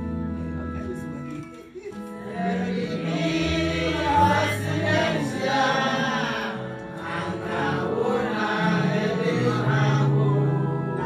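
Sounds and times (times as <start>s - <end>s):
held instrumental notes: 0.0s - 11.0s
group of voices singing: 2.2s - 11.0s.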